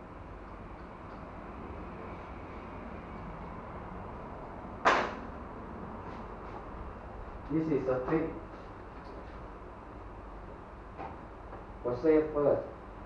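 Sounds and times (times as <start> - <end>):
low background hum: 0.0 - 13.0
sharp knock: 4.8 - 5.2.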